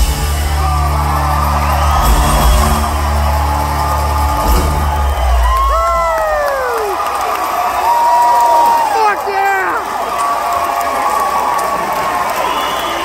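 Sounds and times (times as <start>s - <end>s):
crowd cheering and whooping: 0.0s - 13.0s.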